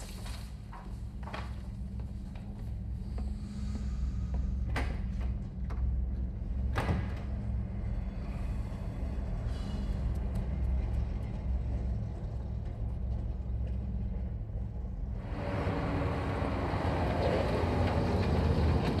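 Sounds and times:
low rumble: 0.0s - 19.0s
truck engine and tyre noise: 8.9s - 19.0s.

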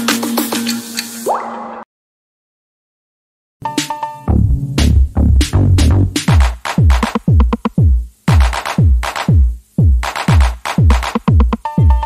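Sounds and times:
logo intro jingle: 3.8s - 6.2s.

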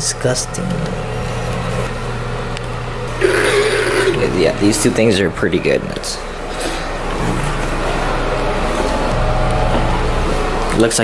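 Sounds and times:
steady low hum: 0.0s - 11.0s
paper towel dispenser motor: 0.6s - 4.5s.

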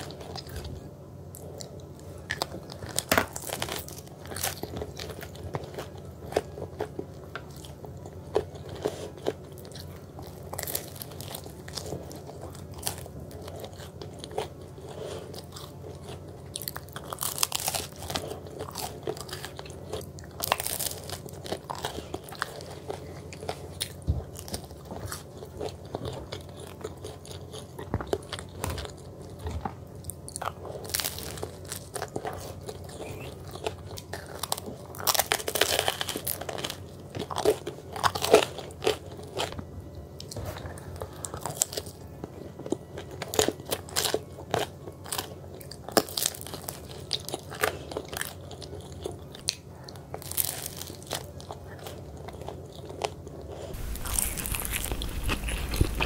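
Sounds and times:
crunchy bites into pizza crust: 1.6s - 56.0s
person chewing with mouth clicks: 4.2s - 56.0s.

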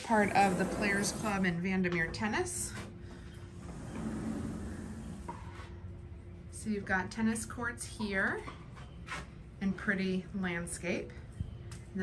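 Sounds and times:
faint constant hum: 0.0s - 12.0s
low outdoor rumble: 0.0s - 12.0s.

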